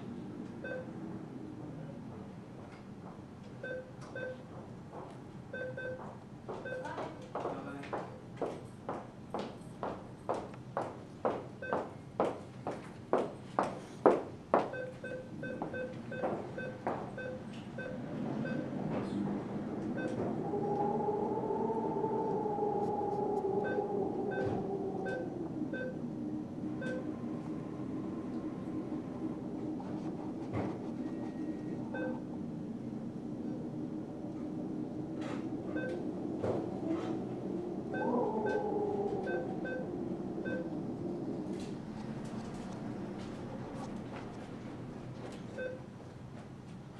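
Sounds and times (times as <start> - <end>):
keypad beeps: 31.1 - 32.2.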